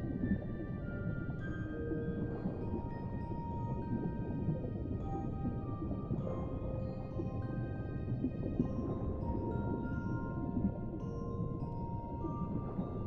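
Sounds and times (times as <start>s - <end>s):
deep underwater rumble: 0.0s - 13.0s
music box lullaby: 0.7s - 13.0s.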